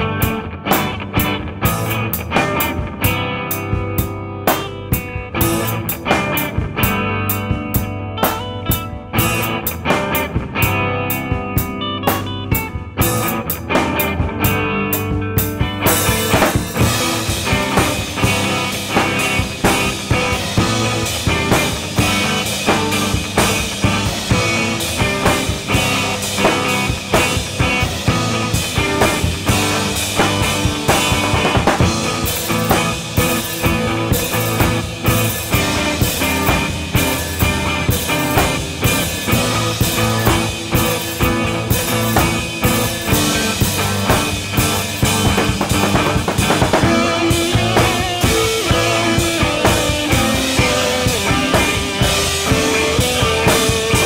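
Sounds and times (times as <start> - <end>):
busy drum kit: 0.0 - 54.0
progressive rock band playing: 0.0 - 54.0.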